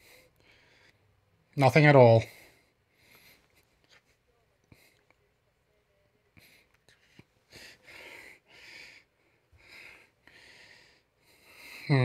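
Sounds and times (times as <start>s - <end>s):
soft breaths and sniffs: 2.2s - 5.4s, 6.2s - 12.0s.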